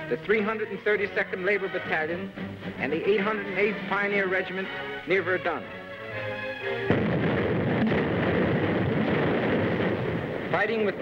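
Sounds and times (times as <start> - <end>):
film score music: 0.0 - 10.9
artillery and gunfire: 6.8 - 11.0.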